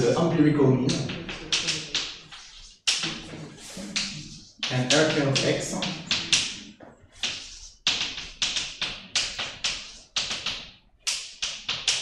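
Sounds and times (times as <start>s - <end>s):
chalk tapping on blackboard: 0.9s - 12.0s.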